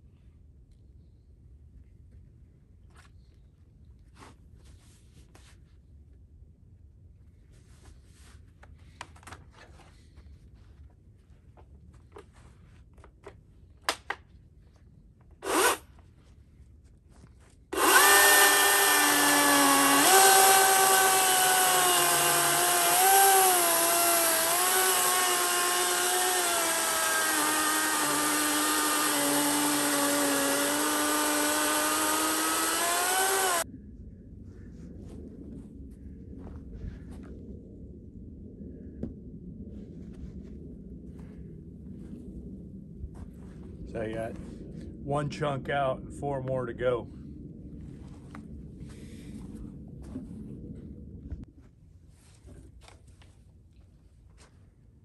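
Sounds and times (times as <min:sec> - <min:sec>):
electric chainsaw cutting log: 0:15.4 - 0:15.9, 0:17.7 - 0:33.6.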